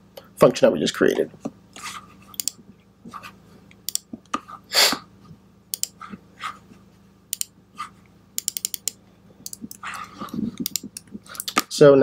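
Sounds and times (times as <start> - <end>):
faint low hum: 0.0 - 12.0
computer keyboard typing: 5.8 - 6.0, 8.4 - 10.0, 10.6 - 11.6.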